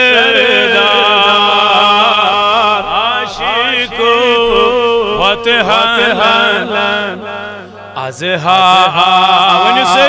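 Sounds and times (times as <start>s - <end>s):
man chanting melodically: 0.0s - 10.0s.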